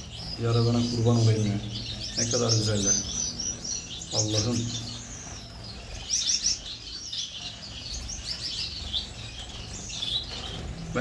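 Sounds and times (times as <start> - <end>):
finches chirping: 0.0 - 11.0.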